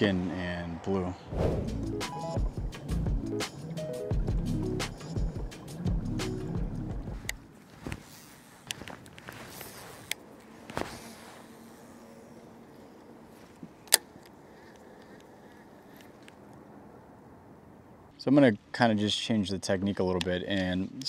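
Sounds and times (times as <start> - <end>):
background music: 1.4 - 7.5.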